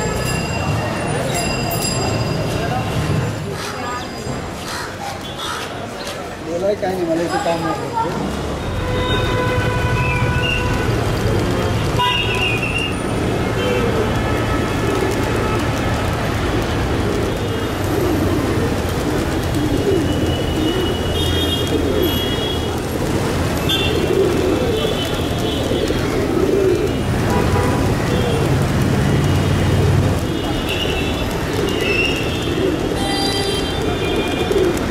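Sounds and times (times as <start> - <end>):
traffic rumble: 0.0 - 34.9
vehicle horns: 8.6 - 16.1, 19.9 - 22.8, 23.6 - 24.1, 26.9 - 28.5, 29.1 - 34.6
pigeons cooing: 10.0 - 34.9.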